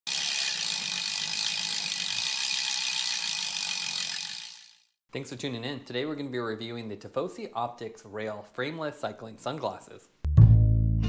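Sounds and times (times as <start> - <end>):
bicycle freewheel ticking: 0.1 - 5.0.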